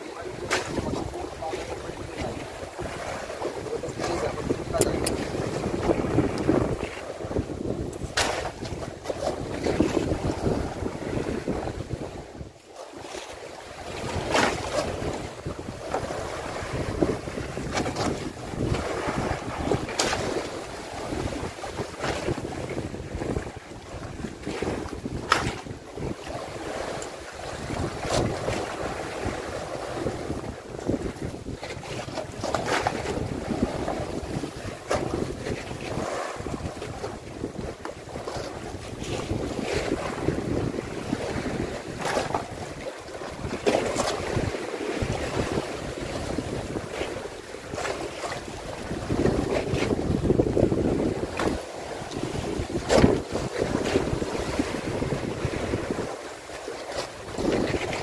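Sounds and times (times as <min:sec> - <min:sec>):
sea water washing: 0:00.0 - 0:58.0
wind buffeting microphone: 0:00.0 - 0:58.0.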